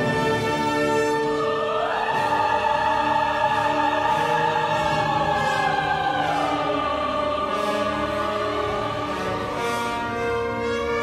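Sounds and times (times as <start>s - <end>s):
mixed choir singing: 0.0s - 11.0s
symphony orchestra: 0.0s - 11.0s.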